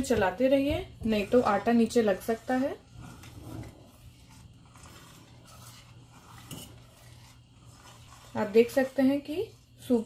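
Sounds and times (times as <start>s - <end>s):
metal spoon stirring in saucepan: 0.0s - 10.0s.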